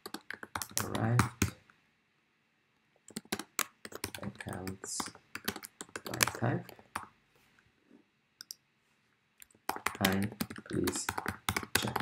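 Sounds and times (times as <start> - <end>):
computer mouse clicks: 3.1 - 4.2.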